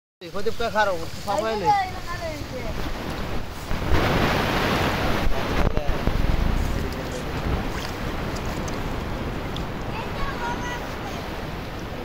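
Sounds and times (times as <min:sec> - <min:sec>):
water churning and splashing: 0:00.8 - 0:12.0
wind rumbling on microphone: 0:01.1 - 0:12.0.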